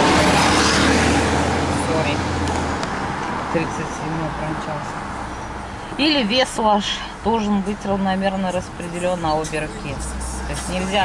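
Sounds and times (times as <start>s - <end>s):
bus passing: 0.0s - 11.0s
road and engine noise inside car: 0.0s - 11.0s.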